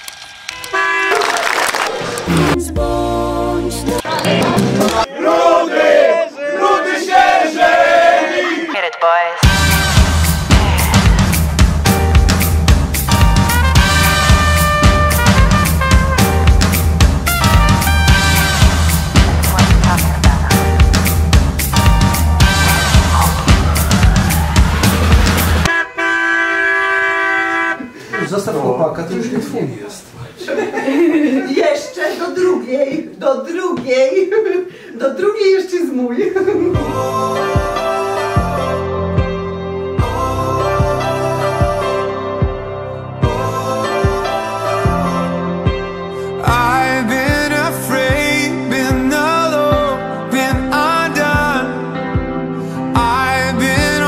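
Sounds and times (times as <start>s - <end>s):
short horn toot: 0.5s - 1.4s, 25.6s - 28.6s
dance music with heavy beat: 9.4s - 25.7s.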